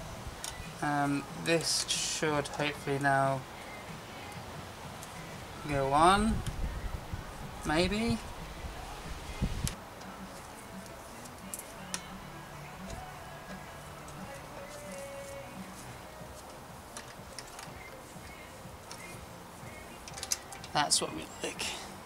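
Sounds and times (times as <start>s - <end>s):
faint background music: 0.0s - 22.0s.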